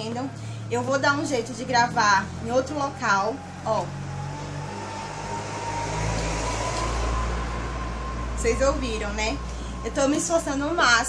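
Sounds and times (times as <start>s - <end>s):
motor vehicle passing: 0.0s - 11.0s.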